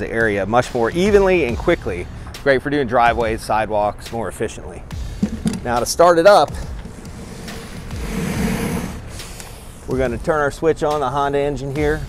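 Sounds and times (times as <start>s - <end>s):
street traffic hiss and rumble: 1.0s - 10.3s.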